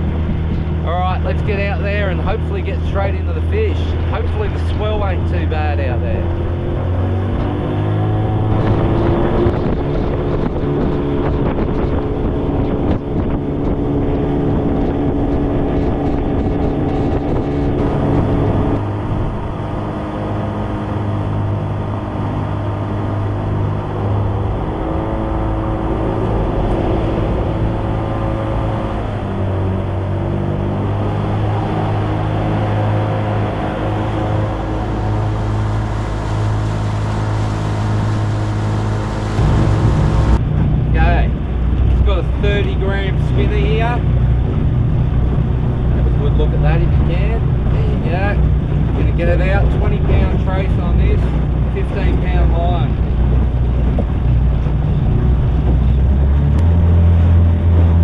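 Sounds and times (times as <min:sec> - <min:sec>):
outboard motor running: 0:00.0 - 0:58.0
water rushing past hull: 0:00.0 - 0:58.0
wind on microphone: 0:00.0 - 0:58.0.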